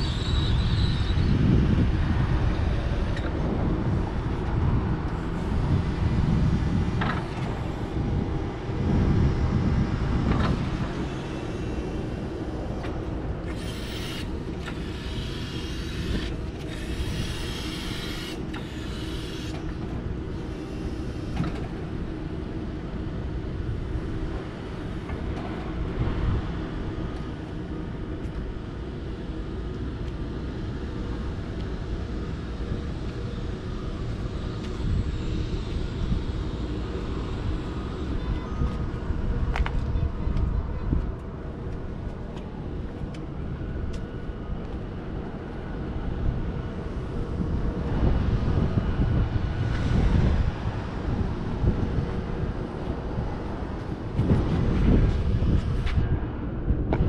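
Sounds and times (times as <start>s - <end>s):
electric forklift rumbling: 0.0s - 26.8s
hissing bursts: 13.5s - 19.5s.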